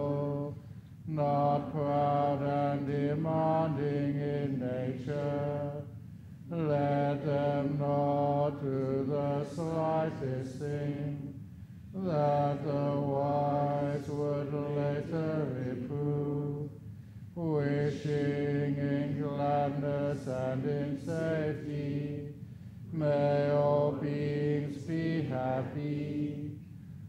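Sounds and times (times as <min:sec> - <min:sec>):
man chanting in low voice: 0:00.0 - 0:27.0.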